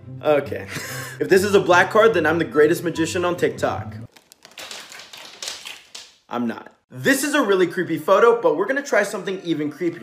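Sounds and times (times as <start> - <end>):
playing cards fluttering clicks: 4.1 - 6.1.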